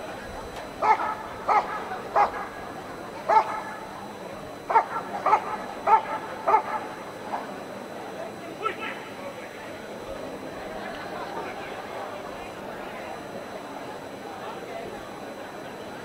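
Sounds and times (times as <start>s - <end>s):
dog barking: 0.8s - 2.6s, 3.2s - 3.8s, 4.7s - 7.5s.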